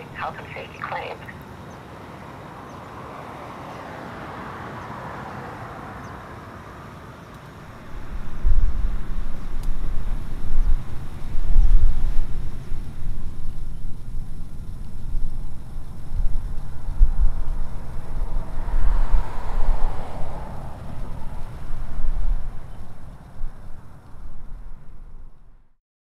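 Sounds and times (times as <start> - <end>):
low outdoor rumble: 0.0 - 1.5, 7.6 - 25.7.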